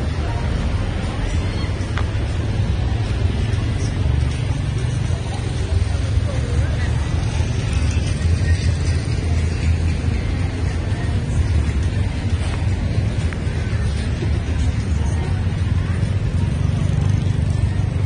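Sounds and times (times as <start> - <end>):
music: 0.0 - 18.0
passers-by voices: 0.0 - 18.0
road traffic rumble: 0.0 - 18.0.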